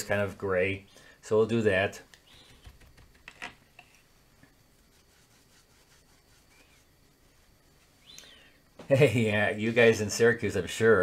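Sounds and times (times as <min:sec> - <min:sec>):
brush rubbing paint in palette: 0:03.9 - 0:08.2, 0:09.5 - 0:10.2.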